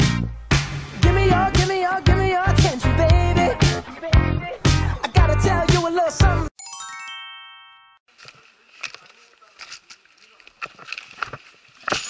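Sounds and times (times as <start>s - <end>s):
bright electronic chime: 6.6s - 8.0s
faint outdoor rustling: 8.1s - 12.0s.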